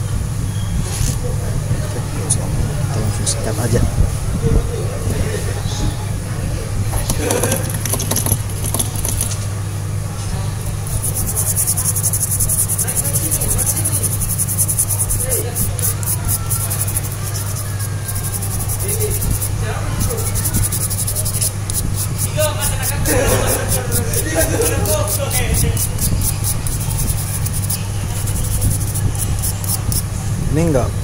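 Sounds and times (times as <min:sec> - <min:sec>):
steady low hum: 0:00.0 - 0:31.0
brush scrubbing circuit board: 0:07.0 - 0:09.3, 0:10.6 - 0:30.0.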